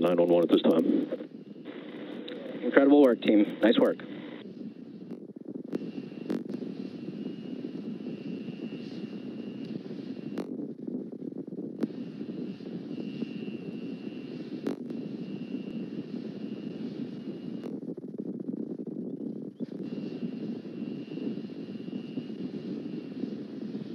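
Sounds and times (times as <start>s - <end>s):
faint high whine: 0.0s - 23.9s
steady low rumbling: 0.0s - 23.9s
sharp clicks: 5.1s - 6.6s, 14.6s - 15.0s.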